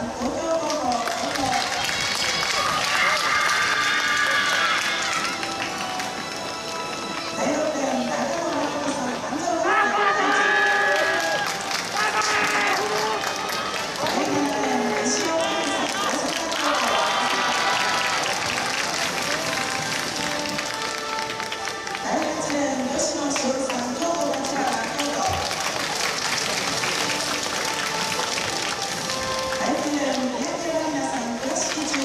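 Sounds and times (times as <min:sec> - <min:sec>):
crowd noise: 0:00.0 - 0:32.0
applause: 0:00.1 - 0:08.7, 0:10.7 - 0:32.0
announcer calling over loudspeaker: 0:07.3 - 0:18.1, 0:22.0 - 0:25.5.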